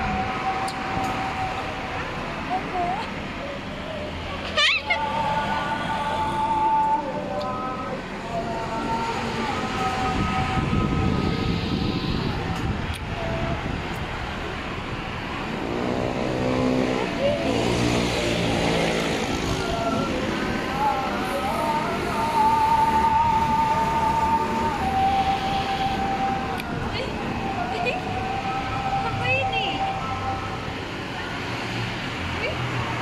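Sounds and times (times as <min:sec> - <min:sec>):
motorbikes passing: 0:00.0 - 0:33.0
street traffic: 0:00.0 - 0:33.0.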